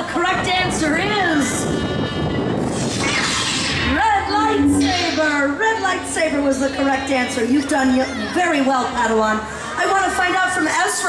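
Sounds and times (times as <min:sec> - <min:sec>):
lightsaber sound effect: 0:02.8 - 0:06.4.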